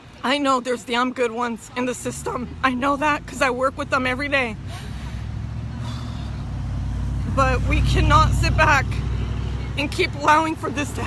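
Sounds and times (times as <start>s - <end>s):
vehicle engine rumble: 1.4s - 11.0s.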